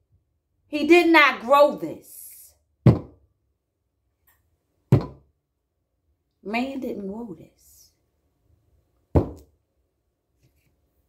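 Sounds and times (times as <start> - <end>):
onion knocking on counter: 2.8 - 3.2, 4.9 - 5.2, 9.1 - 9.5.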